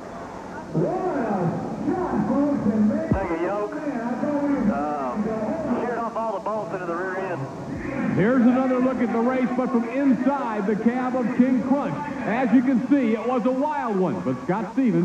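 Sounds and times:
man talking: 0:00.7 - 0:07.5, 0:08.1 - 0:15.0.

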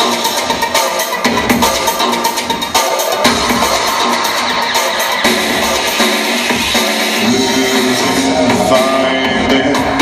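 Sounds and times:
synthpop band playing live: 0:00.0 - 0:10.0.

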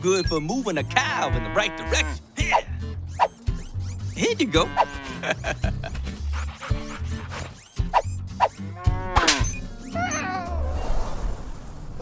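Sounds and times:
light background music: 0:00.0 - 0:10.8
cow mooing: 0:00.8 - 0:02.2, 0:04.4 - 0:05.4, 0:08.6 - 0:09.6.

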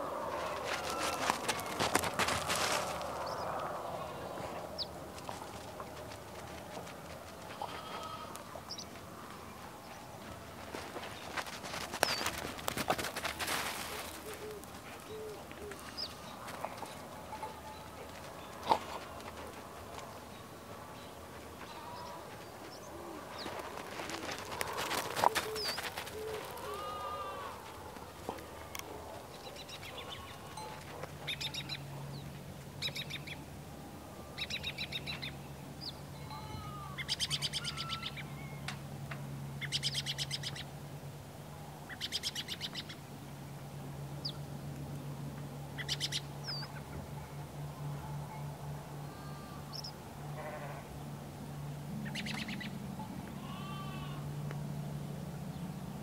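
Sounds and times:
birds chattering: 0:00.3 - 0:33.4, 0:45.7 - 0:47.4.

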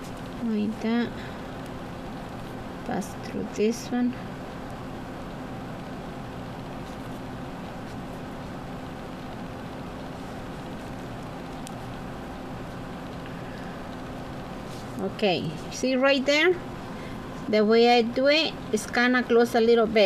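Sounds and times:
background hum and hiss: 0:00.0 - 0:20.0.

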